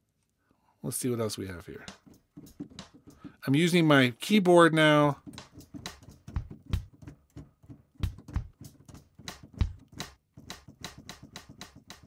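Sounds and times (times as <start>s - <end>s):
drum sample hits: 1.8s - 3.6s, 5.1s - 12.0s.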